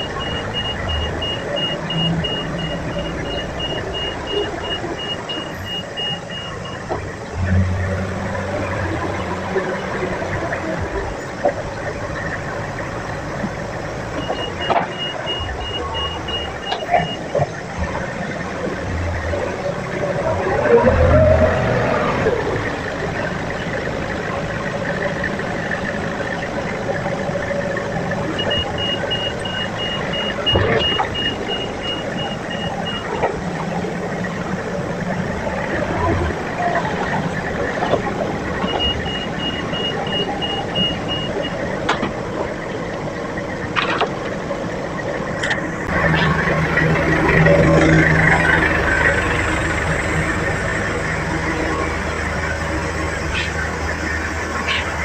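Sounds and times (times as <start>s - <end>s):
rapid warning beeps: 0.0s - 7.0s, 14.2s - 17.4s, 28.3s - 33.3s, 38.6s - 41.7s
forklift engine running: 0.0s - 55.0s.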